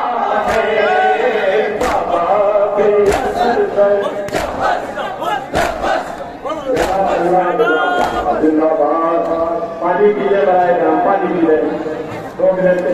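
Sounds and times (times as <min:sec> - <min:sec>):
men chanting a lament: 0:00.0 - 0:11.9
crowd chest-beating strikes: 0:00.3 - 0:08.4.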